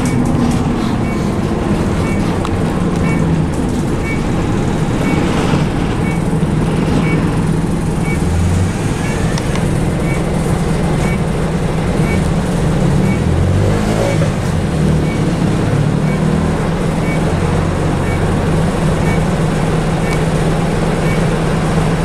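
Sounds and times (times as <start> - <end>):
bus engine low drone: 0.0 - 22.0.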